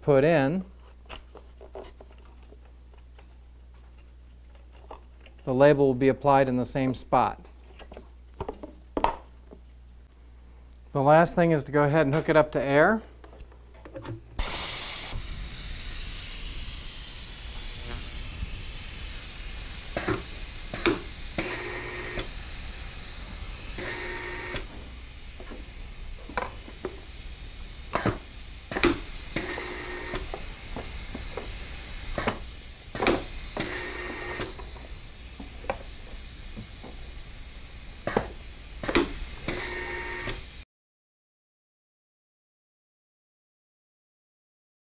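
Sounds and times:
compressed air hissing: 0:14.4 - 0:40.6.

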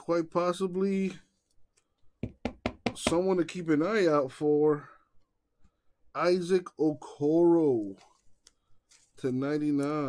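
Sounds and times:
man speaking: 0:00.0 - 0:01.2, 0:02.9 - 0:04.9, 0:06.2 - 0:08.0, 0:09.2 - 0:10.0
card holders knocking on tabletop: 0:02.2 - 0:03.2.

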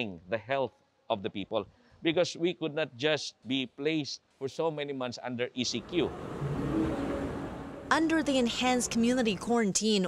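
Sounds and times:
outdoor street noise: 0:05.6 - 0:10.0.

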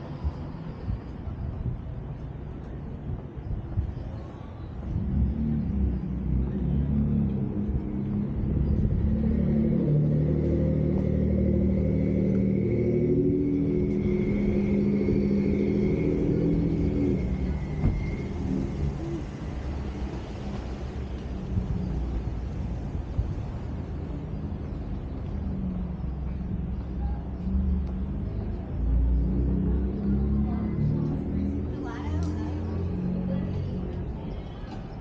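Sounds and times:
engine running: 0:04.8 - 0:34.8.

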